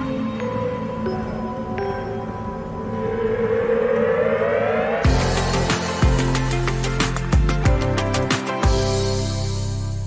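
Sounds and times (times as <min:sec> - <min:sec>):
low sustained musical bed: 0:00.0 - 0:08.2
rising synthesized siren tone: 0:02.8 - 0:06.4.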